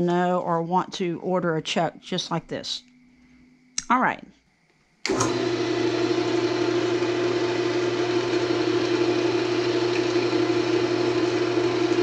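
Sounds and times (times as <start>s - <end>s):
wood lathe motor humming: 5.0s - 12.0s.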